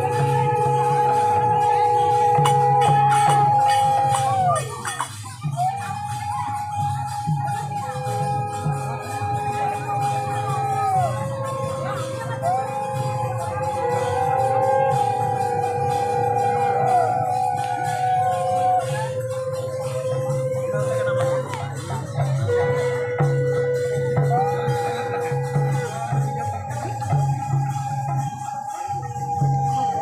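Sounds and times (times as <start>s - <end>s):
jingling cymbals: 0.0s - 30.0s
steady drum beat: 0.0s - 30.0s.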